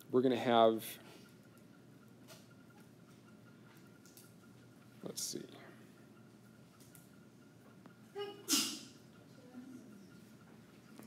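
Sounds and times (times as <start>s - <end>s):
person sneezing: 8.5s - 8.9s.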